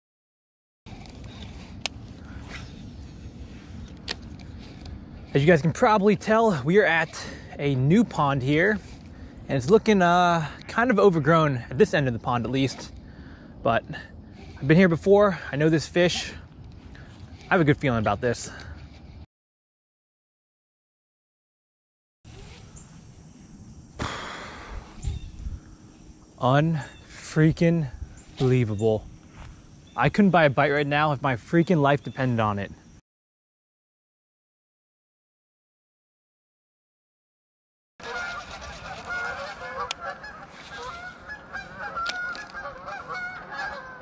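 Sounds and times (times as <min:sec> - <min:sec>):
geese honking: 0:38.0 - 0:44.0.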